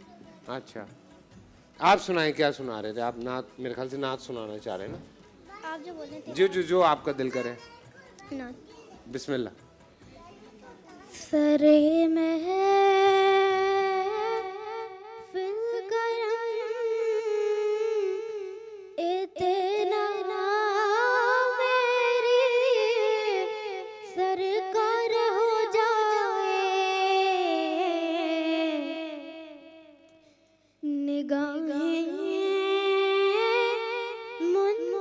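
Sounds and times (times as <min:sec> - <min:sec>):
boy singing unaccompanied: 0:10.1 - 0:29.6, 0:30.8 - 0:35.0.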